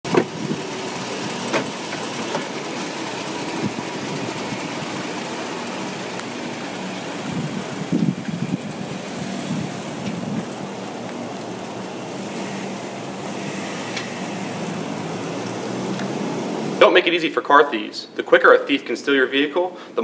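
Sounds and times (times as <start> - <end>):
pickup truck engine idling: 0.0 - 17.0
uneven engine rumbling: 0.0 - 18.7
outdoor noise: 0.0 - 20.0.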